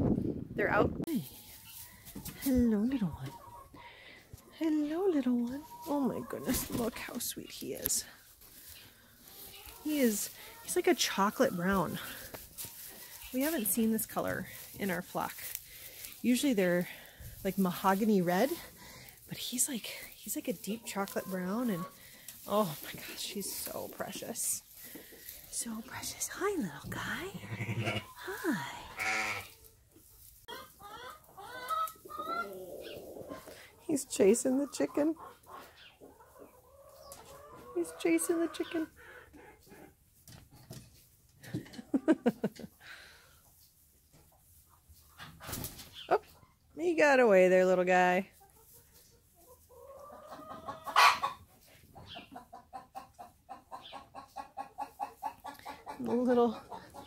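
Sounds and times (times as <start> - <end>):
chickens clucking: 1.3 - 46.8, 48.3 - 57.0
lamb bleating: 27.3 - 28.2, 28.9 - 29.5
chicken calling: 30.5 - 33.6, 49.7 - 51.4.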